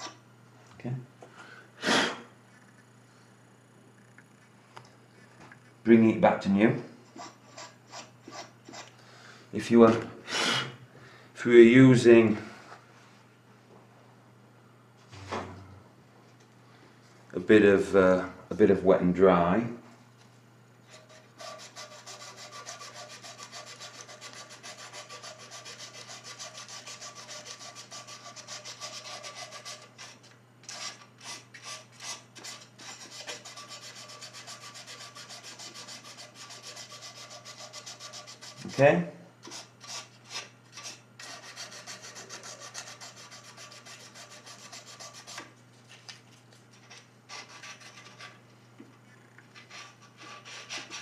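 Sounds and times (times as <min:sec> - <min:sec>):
abrasive paper rubbing on metal rod: 0:20.9 - 0:38.8, 0:39.4 - 0:45.5.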